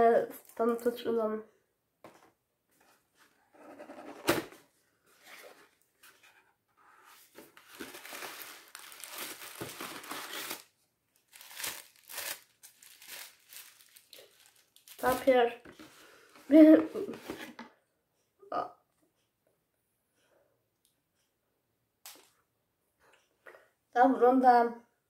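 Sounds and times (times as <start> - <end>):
gift wrapping paper tearing: 7.6 - 15.4.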